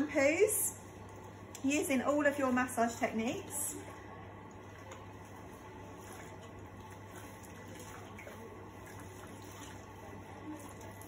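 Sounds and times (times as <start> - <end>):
water running from spray hose: 5.8 - 11.0.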